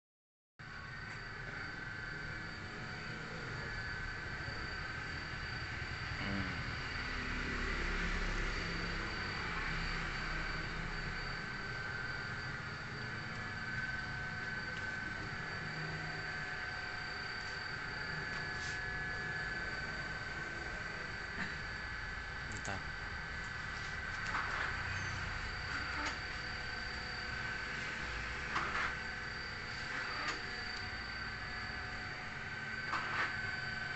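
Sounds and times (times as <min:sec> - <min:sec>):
printer humming: 0:00.6 - 0:33.9.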